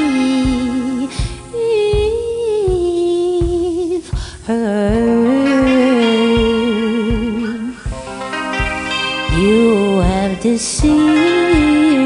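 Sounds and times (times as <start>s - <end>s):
low drum beat: 0.0s - 12.0s
singer breathing in: 1.1s - 1.5s, 4.1s - 4.4s.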